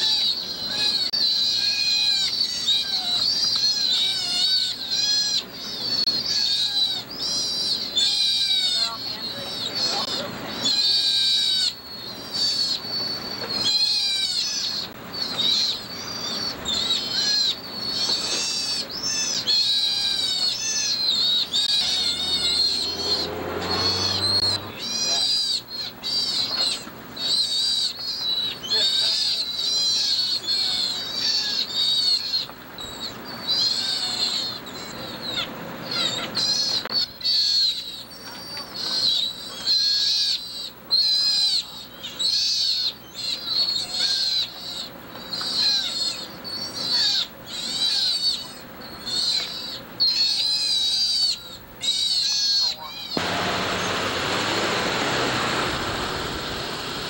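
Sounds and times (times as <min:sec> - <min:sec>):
sea otters calling: 0:00.0 - 0:57.0.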